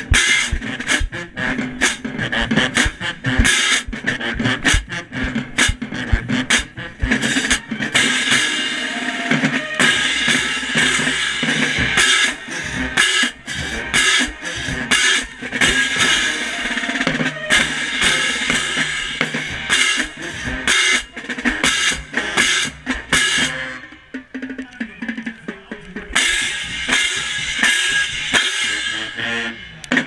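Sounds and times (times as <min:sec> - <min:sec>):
snare and bass drums: 0:00.0 - 0:30.0.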